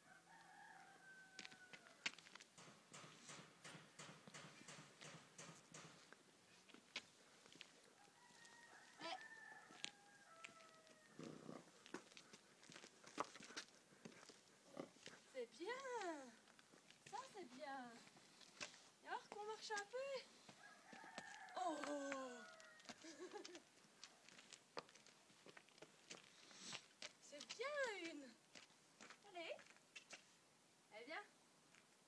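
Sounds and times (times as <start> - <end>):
horse hooves clicking on hard ground: 1.2 - 17.4, 18.0 - 21.5
faint drawn-out vocal calls: 20.8 - 23.1.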